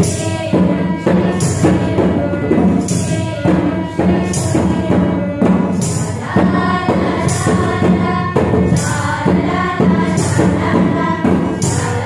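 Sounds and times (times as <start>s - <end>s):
barrel drum beat: 0.0s - 12.0s
girls singing in unison: 0.0s - 12.0s
harmonium: 0.0s - 12.0s.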